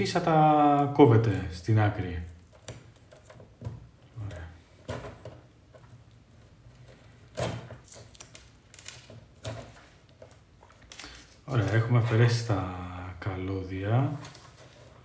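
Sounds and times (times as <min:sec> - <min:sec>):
soft rustles and small crackles: 0:00.6 - 0:12.6, 0:13.5 - 0:15.0.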